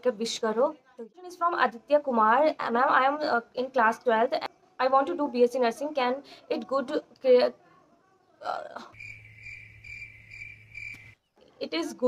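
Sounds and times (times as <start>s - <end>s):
crickets chirping: 9.0s - 11.2s.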